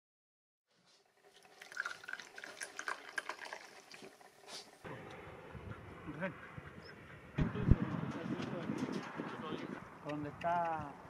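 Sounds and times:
liquid pouring into a glass: 0:01.2 - 0:04.4.

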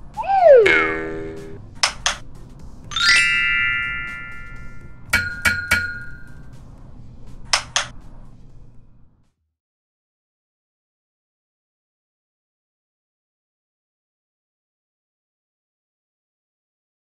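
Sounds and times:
short held tones: 0:00.0 - 0:01.6
bright ringing chime: 0:00.2 - 0:01.6, 0:03.0 - 0:04.8.

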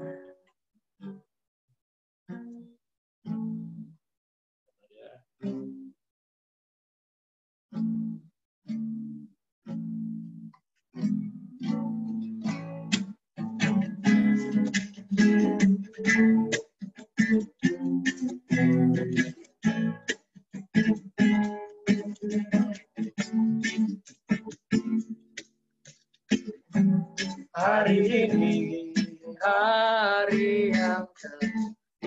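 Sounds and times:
acoustic guitar strumming chords: 0:00.0 - 0:01.2, 0:07.8 - 0:31.8.

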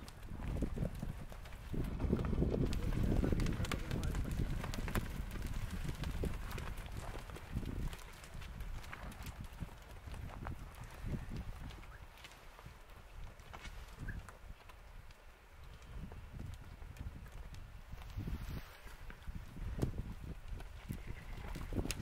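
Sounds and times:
hooves on stony dirt: 0:00.0 - 0:22.0.

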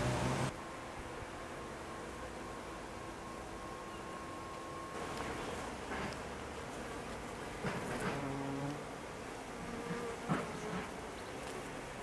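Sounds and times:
insect buzzing past: 0:06.7 - 0:12.0.

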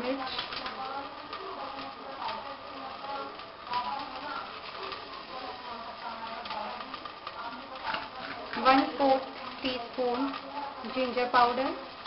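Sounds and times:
faint background voices: 0:00.0 - 0:12.0
low room noise: 0:00.0 - 0:12.0.

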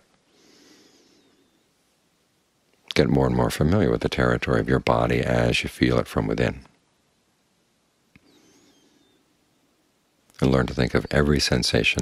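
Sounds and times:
faint click: 0:08.1 - 0:08.3.

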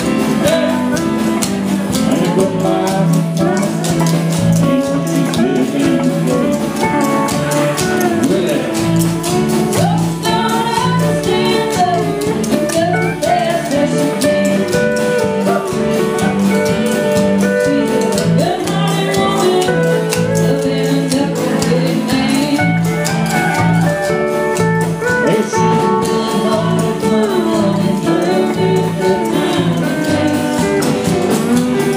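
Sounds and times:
band music with singer and guitar: 0:00.0 - 0:31.9.

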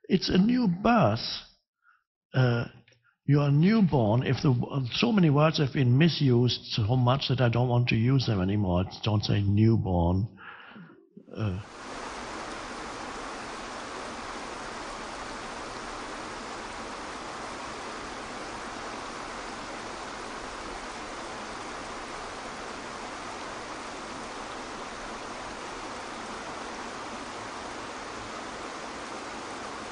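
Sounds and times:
waterfall pouring into pool: 0:11.6 - 0:29.9.

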